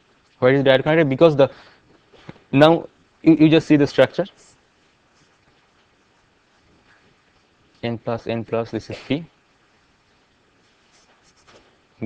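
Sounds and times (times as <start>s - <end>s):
marker pen scratching on paper: 10.6s - 11.8s.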